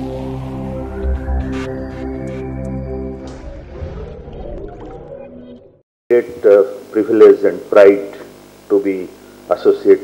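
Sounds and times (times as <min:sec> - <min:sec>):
electronic ident music: 0:00.0 - 0:05.8.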